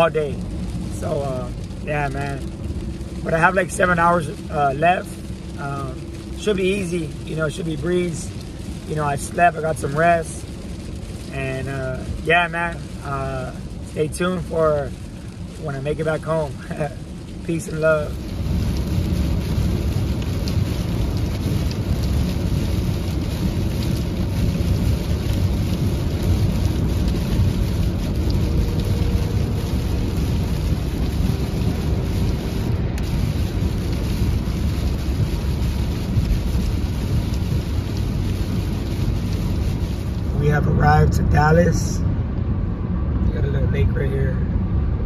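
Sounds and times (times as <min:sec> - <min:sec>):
raindrop ticks: 0:00.0 - 0:41.9
hiss of spray and rain: 0:00.0 - 0:44.3
tyres rumbling on wet road: 0:00.0 - 0:45.0.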